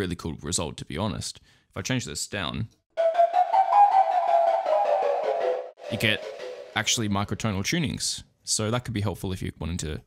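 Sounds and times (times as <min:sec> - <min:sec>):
synthesized flute notes: 0:03.0 - 0:07.4.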